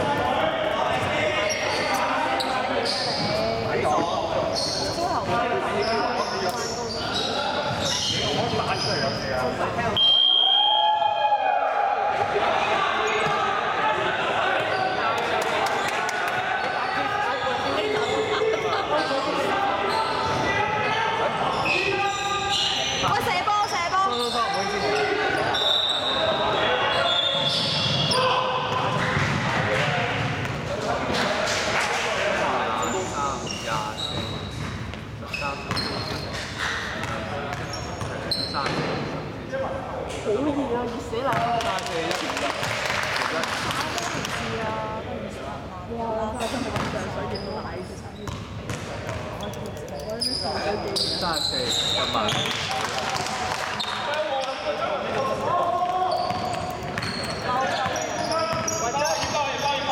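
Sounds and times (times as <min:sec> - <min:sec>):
players' voices and calls: 0:00.0 - 0:59.9.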